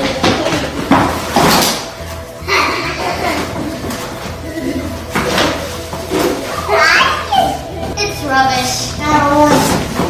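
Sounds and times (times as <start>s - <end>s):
background music: 0.0s - 10.0s
children's voices playing: 6.4s - 10.0s.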